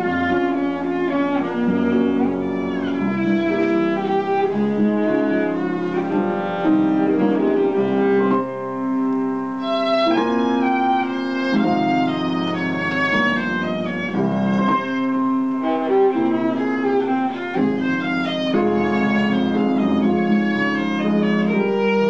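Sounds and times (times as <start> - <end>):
bowed violin melody: 0.0 - 22.0.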